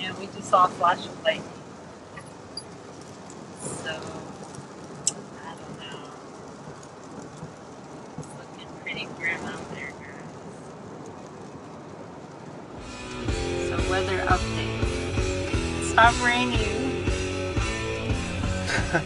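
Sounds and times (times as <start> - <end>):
rain hiss: 0.0 - 19.0
wet tyres on road: 0.0 - 19.0
background music with beat: 12.8 - 19.0.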